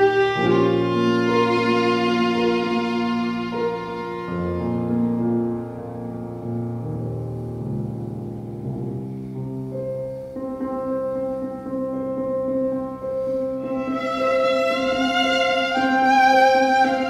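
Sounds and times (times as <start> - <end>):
violin melody: 0.0 - 7.5, 10.2 - 17.0
piano chords: 0.0 - 17.0.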